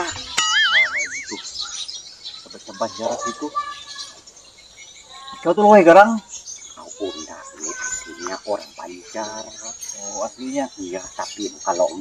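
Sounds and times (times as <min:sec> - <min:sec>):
warbling whistle-like tone: 0:00.0 - 0:01.7.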